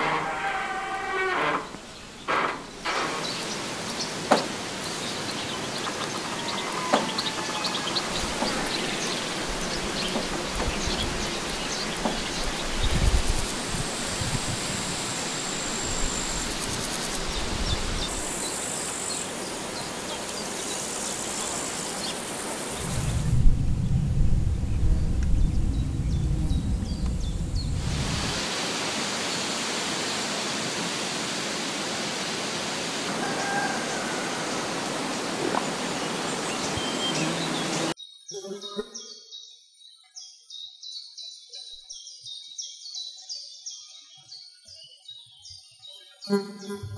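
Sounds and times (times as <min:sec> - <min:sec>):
steady hiss: 0:00.0 - 0:38.0
low rumble: 0:22.8 - 0:28.4.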